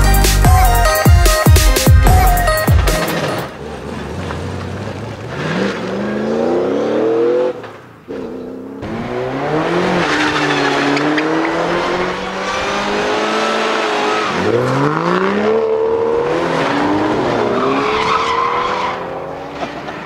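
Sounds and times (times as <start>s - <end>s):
race car engines revving: 2.8s - 20.0s.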